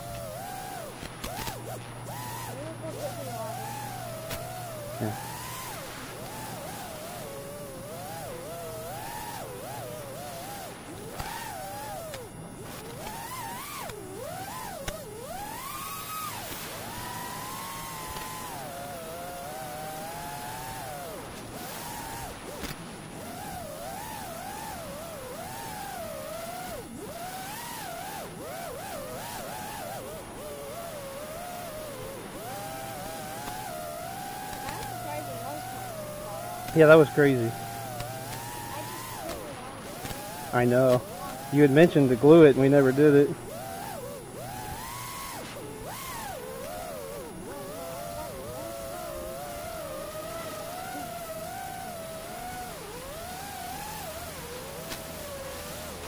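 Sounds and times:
quadcopter motors whining: 0:00.0 - 0:56.0.

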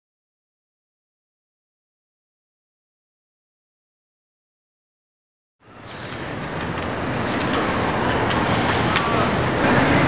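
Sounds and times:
steady traffic noise: 0:05.6 - 0:10.0
faint voices: 0:05.7 - 0:10.0.

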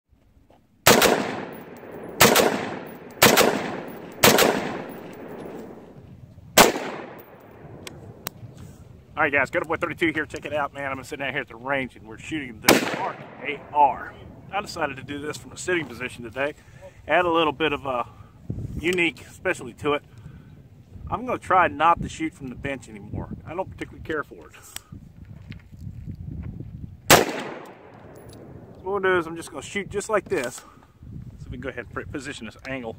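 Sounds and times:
rifle shots with echo: 0:00.8 - 0:06.0, 0:06.6 - 0:08.2, 0:12.6 - 0:14.5, 0:27.1 - 0:28.7.

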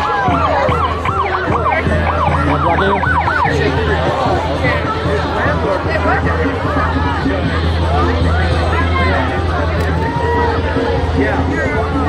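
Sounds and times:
siren yelping: 0:00.0 - 0:04.0
crowd noise: 0:00.0 - 0:12.0.

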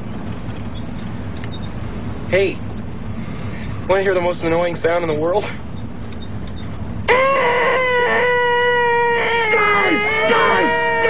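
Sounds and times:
man's nasal high-pitched whine: 0:07.1 - 0:11.0.

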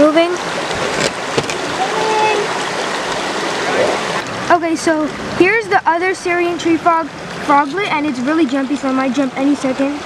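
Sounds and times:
creek water running: 0:00.0 - 0:10.0.

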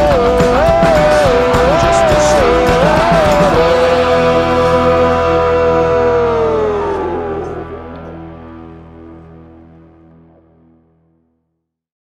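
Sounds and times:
punk rock music: 0:00.0 - 0:10.8
steady low notes: 0:00.0 - 0:11.1.

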